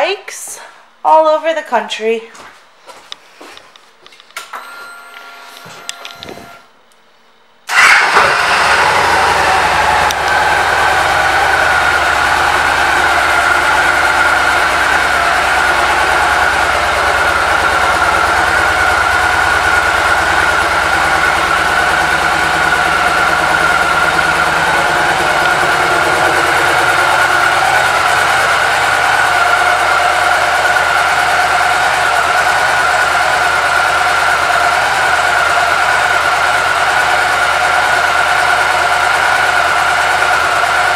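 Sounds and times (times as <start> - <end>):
motorcycle engine starting and idling: 7.7 - 40.9.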